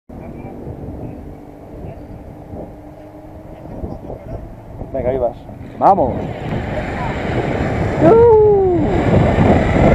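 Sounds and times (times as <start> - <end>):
faint voices: 0.1 - 8.3
wind rumble: 0.1 - 9.9.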